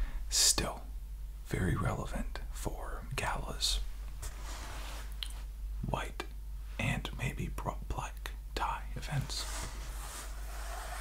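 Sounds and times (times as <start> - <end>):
man whispering: 0.3 - 3.9, 5.8 - 9.7
soft rustle: 4.2 - 5.5, 9.1 - 11.0.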